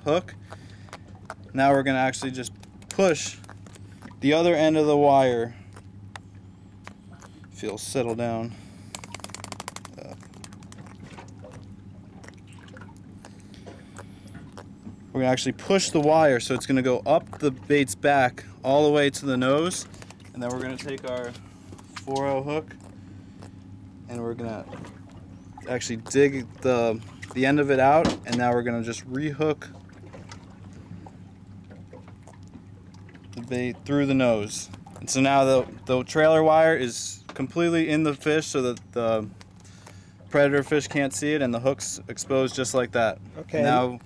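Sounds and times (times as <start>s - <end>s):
boat engine hum: 0.0s - 44.0s
fish flapping wet slaps: 0.4s - 1.5s, 2.1s - 4.2s, 8.8s - 14.7s, 19.7s - 23.6s
clicks and rustles of wire: 8.9s - 11.6s, 19.8s - 23.0s.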